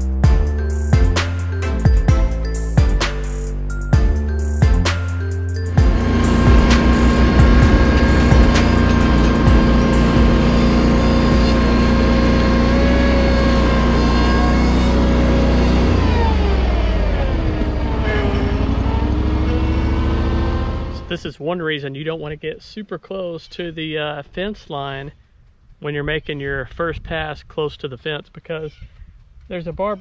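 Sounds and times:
music: 0.0s - 12.0s
tractor engine running: 0.0s - 21.3s
mower cutting grass: 4.2s - 21.2s.

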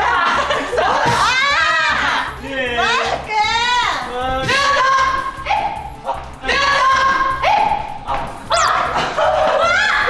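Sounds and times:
background music with steady beat: 0.0s - 10.0s
excited yelps and shouts: 1.0s - 10.0s.

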